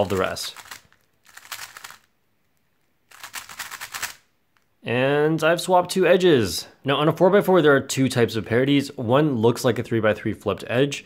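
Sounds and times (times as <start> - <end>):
puzzle cube plastic clicks: 0.0 - 4.7.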